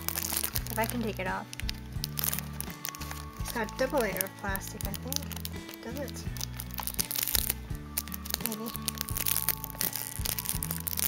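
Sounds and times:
background music with low notes: 0:00.0 - 0:11.0
plastic shrink-wrap crackling: 0:00.0 - 0:11.0.

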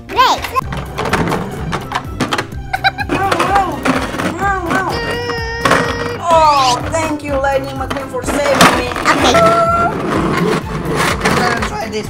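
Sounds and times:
playful background music: 0:00.0 - 0:12.0.

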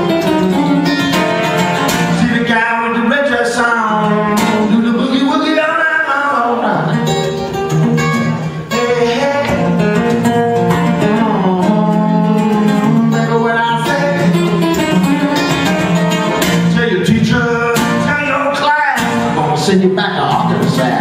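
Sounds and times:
acoustic guitar playing blues: 0:00.0 - 0:21.0
man singing: 0:01.5 - 0:07.4, 0:08.7 - 0:21.0.

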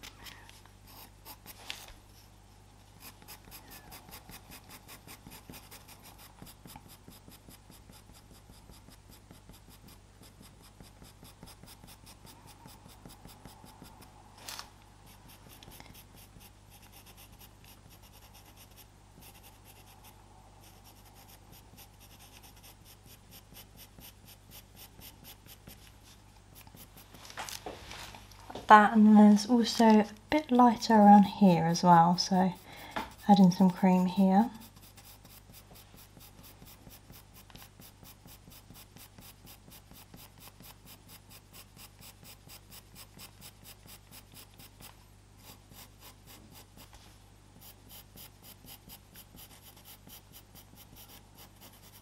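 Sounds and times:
pencil scratching on paper: 0:00.9 - 0:02.3, 0:03.0 - 0:14.2, 0:15.0 - 0:27.2, 0:30.5 - 0:47.0, 0:47.6 - 0:52.0.

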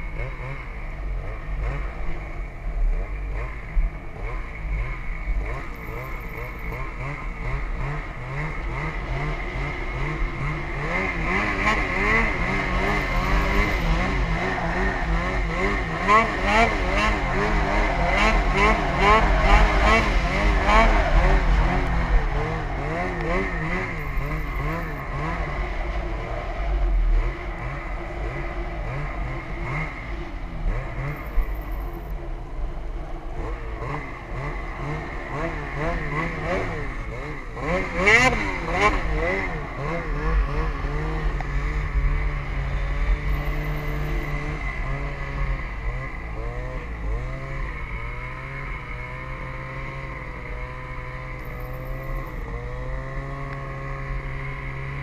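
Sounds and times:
snowmobile engine running: 0:00.0 - 0:55.0.

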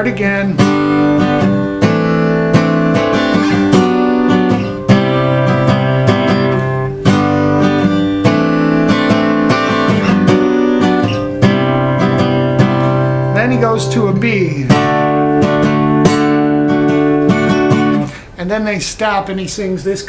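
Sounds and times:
acoustic guitar chords: 0:00.0 - 0:20.0.

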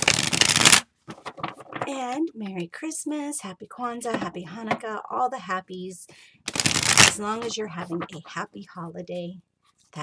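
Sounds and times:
cards riffle-shuffled: 0:00.0 - 0:01.9, 0:06.5 - 0:07.5.

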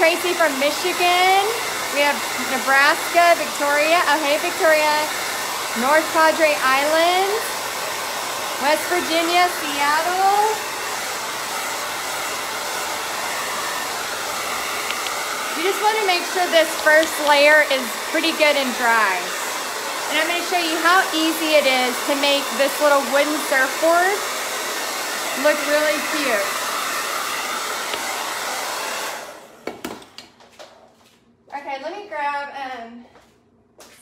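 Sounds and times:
blow dryer blowing: 0:00.0 - 0:30.3.

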